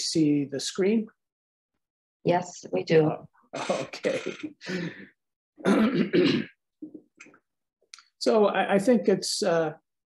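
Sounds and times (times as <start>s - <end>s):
man clearing his throat: 3.6s - 4.7s, 5.6s - 6.6s.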